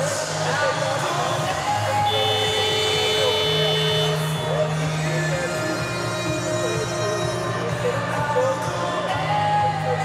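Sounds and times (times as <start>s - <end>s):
background music: 0.0s - 10.0s
arena horn blast: 1.9s - 4.8s.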